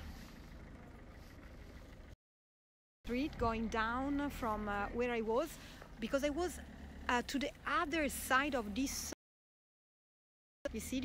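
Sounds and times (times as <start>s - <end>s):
road traffic rumble: 0.0s - 2.2s, 3.1s - 9.2s.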